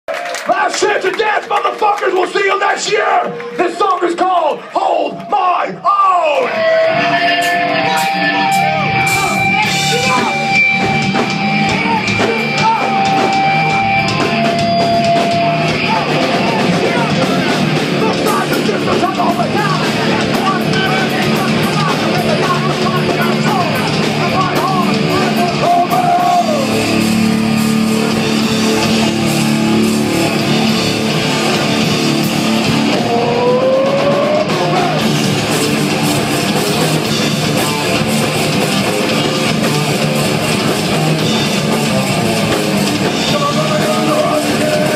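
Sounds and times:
drums: 0.1 - 44.9
distorted electric guitars: 4.6 - 44.9
bass guitar: 6.2 - 44.9.

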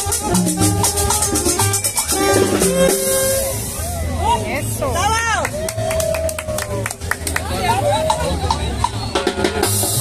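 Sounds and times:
crowd voices calling out: 0.0 - 10.0.

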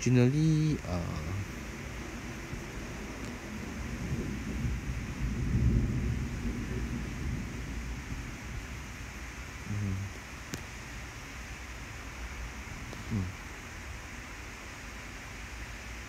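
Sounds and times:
low voice hum: 0.0 - 1.5, 9.6 - 10.2, 12.9 - 13.4
low muffled rumble: 0.7 - 10.3.

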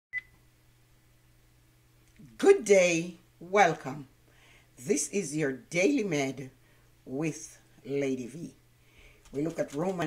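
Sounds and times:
faint low hum: 0.1 - 10.0.

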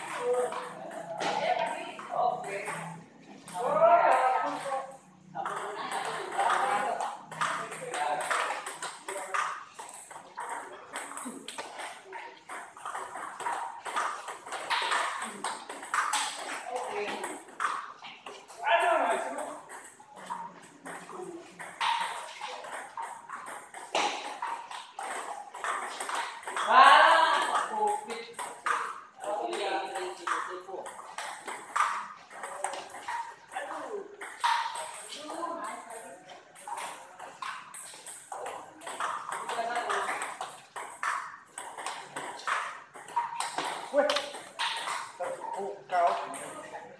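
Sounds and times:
table tennis balls clicking: 0.0 - 46.9.

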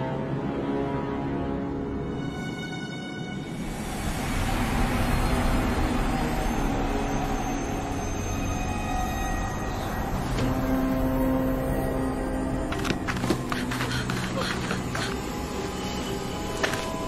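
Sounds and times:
held background music notes: 0.0 - 17.0.

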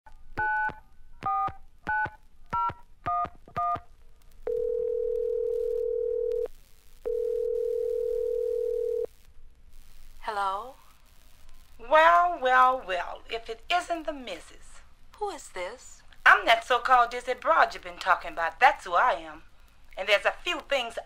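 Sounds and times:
telephone ringback tones: 4.5 - 6.5, 7.1 - 9.1.

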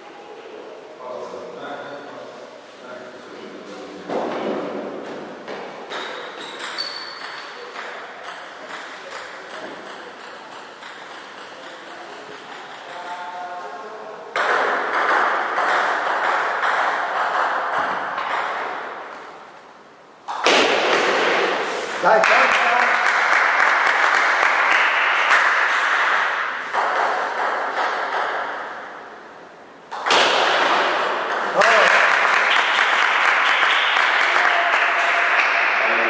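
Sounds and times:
applause: 22.2 - 25.6, 31.5 - 36.0.

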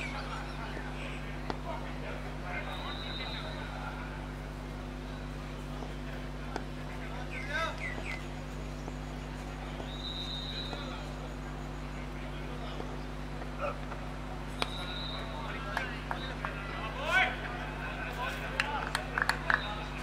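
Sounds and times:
distant voices: 0.0 - 20.0
steady low hum: 0.0 - 20.0.

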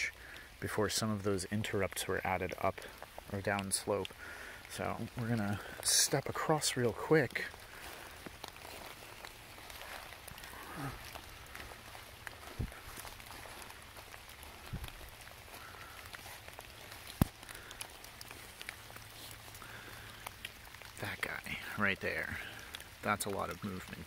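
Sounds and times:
footsteps on wet leaves: 0.0 - 24.0
light rain: 0.0 - 24.0
trickling stream: 0.0 - 24.0.

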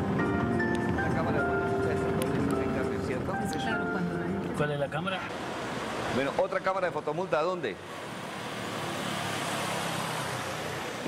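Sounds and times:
road traffic rushing: 0.0 - 11.0.

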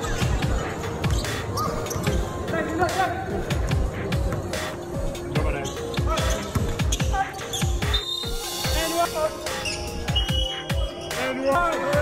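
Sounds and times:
crowd noise: 0.0 - 12.0
music: 0.0 - 12.0.

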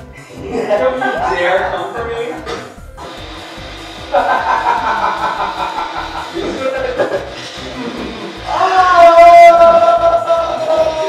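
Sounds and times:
music: 0.0 - 11.0
speech: 0.6 - 2.6.

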